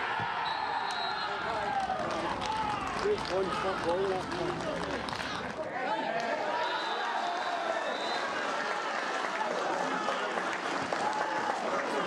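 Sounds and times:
crowd shouting: 0.0 - 2.9.

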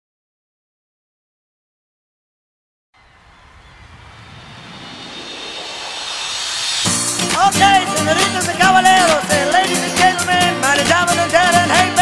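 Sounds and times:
unpitched noise swell: 3.0 - 9.2
latin dance song with beat: 5.0 - 12.0.

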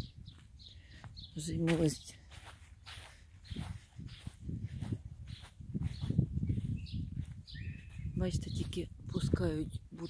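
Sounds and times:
footsteps on grass: 0.0 - 9.7.

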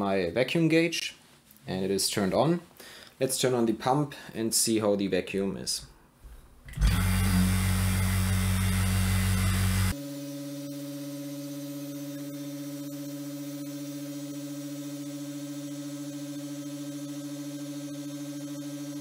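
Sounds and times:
vacuum pump running: 6.7 - 19.0.

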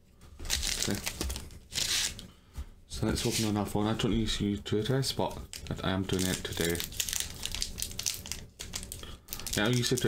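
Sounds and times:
foil wrapper crinkling: 0.5 - 2.2, 5.3 - 10.0.

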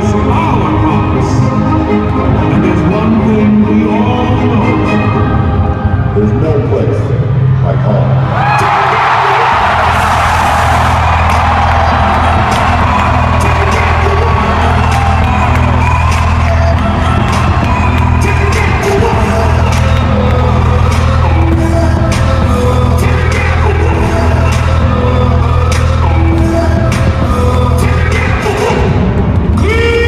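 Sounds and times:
loud music with heavy bass: 0.0 - 30.0
crowd cheering and whooping: 8.2 - 30.0.

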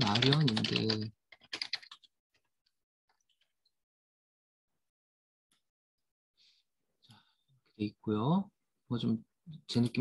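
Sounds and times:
typing on computer keyboard: 0.0 - 2.5.

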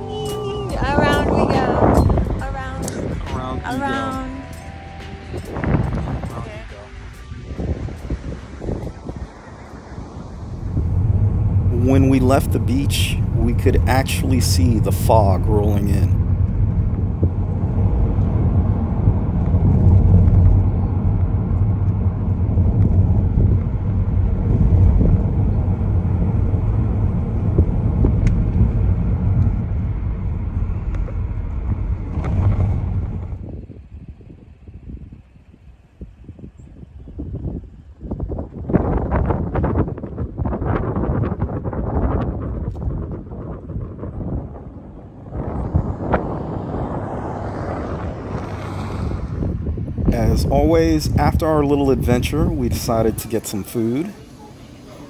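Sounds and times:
car driving on road: 0.0 - 55.0
wind buffeting microphone: 0.0 - 55.0.

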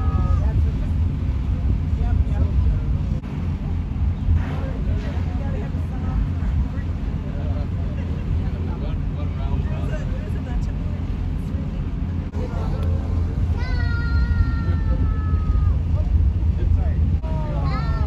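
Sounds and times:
boat engine idling: 0.0 - 18.0
faint voices: 0.0 - 18.0.

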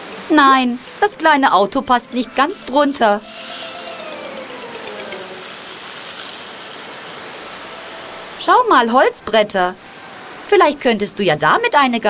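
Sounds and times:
rain hissing: 2.0 - 10.5.

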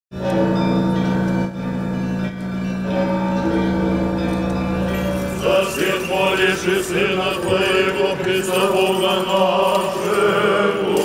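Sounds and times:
church choir chords over drone: 0.2 - 11.0.

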